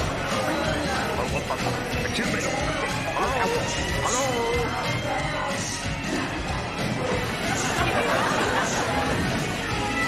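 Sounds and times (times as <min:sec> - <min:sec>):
loud music: 0:00.0 - 0:10.0.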